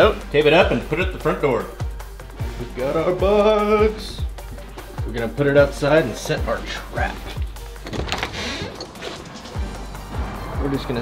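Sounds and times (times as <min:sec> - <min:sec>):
music with low beat: 0:00.0 - 0:08.1.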